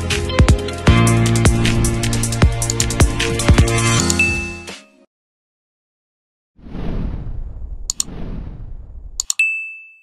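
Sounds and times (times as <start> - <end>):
low rushing whoosh: 6.6 - 9.2
mouse clicks: 7.9 - 8.1, 9.2 - 9.4
bright notification bell ding: 9.3 - 10.0.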